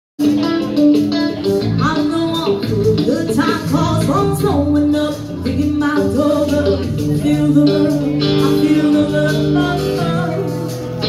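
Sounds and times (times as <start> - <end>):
live band with electric guitar: 0.2 - 11.0.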